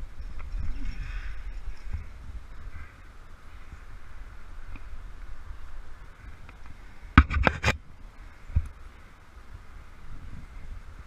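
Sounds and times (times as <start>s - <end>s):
rumbling wind: 0.0s - 11.0s.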